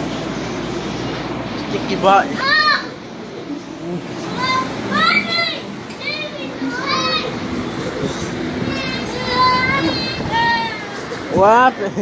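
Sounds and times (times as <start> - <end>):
murmur of voices: 0.3 - 12.0.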